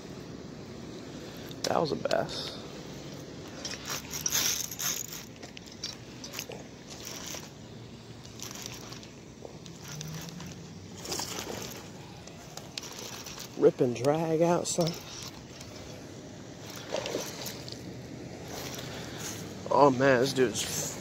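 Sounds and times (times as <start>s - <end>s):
handling noise of rod and reel: 0.2s - 21.0s.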